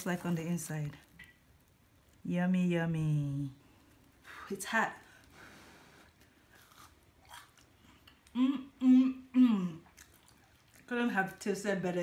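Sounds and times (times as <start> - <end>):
chewing crunchy food: 6.1 - 8.4, 9.8 - 11.4.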